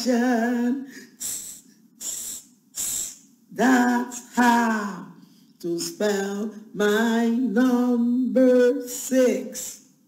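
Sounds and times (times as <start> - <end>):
short spray hisses: 1.2 - 3.2.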